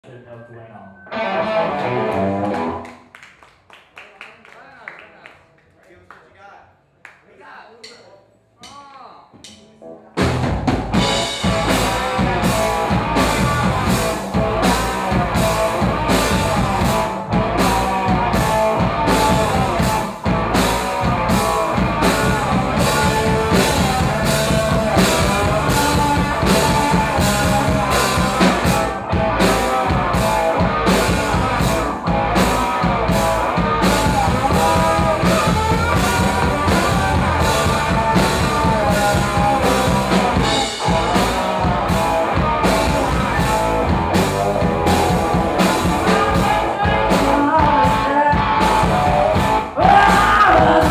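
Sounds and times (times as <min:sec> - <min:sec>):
electric guitar: 0:00.9 - 0:03.1, 0:09.8 - 0:50.9
rock band playing: 0:01.0 - 0:03.1, 0:09.4 - 0:50.9
drum kit: 0:07.8 - 0:50.9
woman singing: 0:47.0 - 0:48.9.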